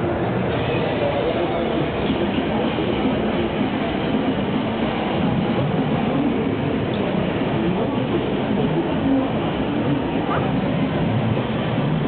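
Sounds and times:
crowded hall din: 0:00.0 - 0:12.0.

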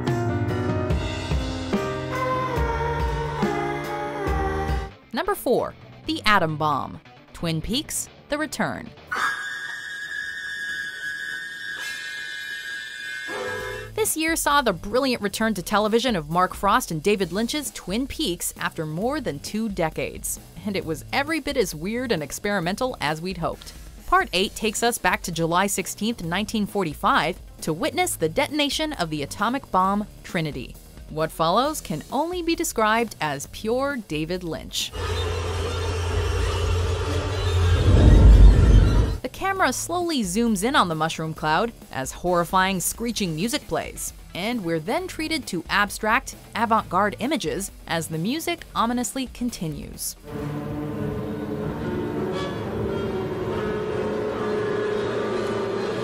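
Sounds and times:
eerie high whistle-like drone: 0:09.1 - 0:13.9, 0:35.0 - 0:39.2, 0:50.3 - 0:56.0
deep explosion rumble: 0:37.4 - 0:39.2
sustained droning tones: 0:50.2 - 0:56.0.

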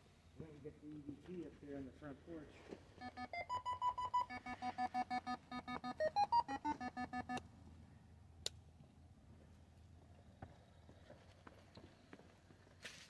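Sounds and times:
pitched electronic beeps: 0:03.0 - 0:07.4.

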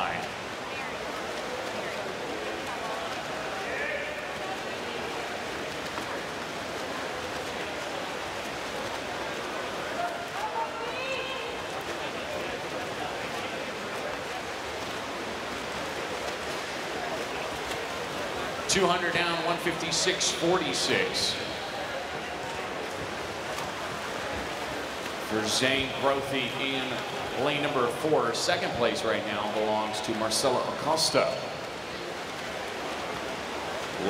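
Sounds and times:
crowd chatter: 0:00.0 - 0:34.0
water splashing from swimming: 0:00.0 - 0:34.0.

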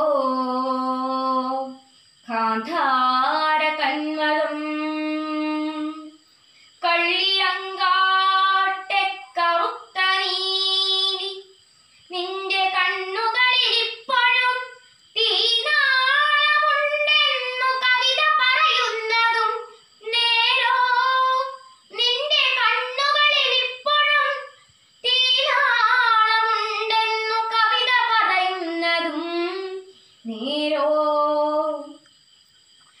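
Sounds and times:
girl chanting a poem: 0:12.1 - 0:32.0.

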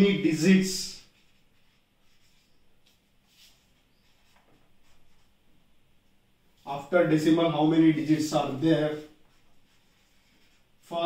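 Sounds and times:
man speaking: 0:00.0 - 0:01.1, 0:06.6 - 0:09.2
marker pen on whiteboard: 0:00.0 - 0:11.0.

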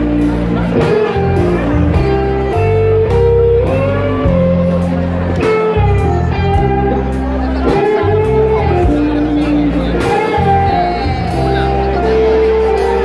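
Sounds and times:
bass guitar: 0:00.0 - 0:13.0
electric guitar bending notes: 0:00.0 - 0:13.0.

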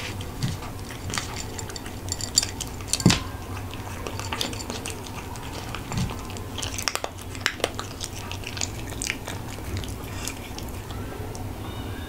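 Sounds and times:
cat crunching dry food: 0:00.0 - 0:11.5.

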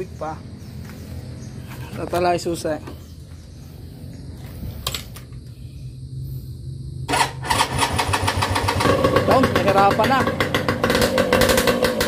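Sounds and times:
electric starter cranking: 0:07.1 - 0:12.0
motorcycle engine running loudly: 0:07.1 - 0:12.0.

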